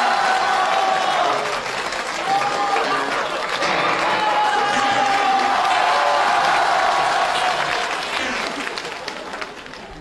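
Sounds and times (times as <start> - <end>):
audience applauding: 0.0 - 10.0.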